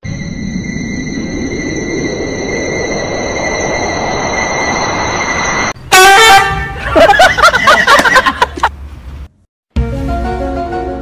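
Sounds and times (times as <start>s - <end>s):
steady hiss with high tones: 0.0s - 5.8s
loud flat honk: 5.9s - 6.8s.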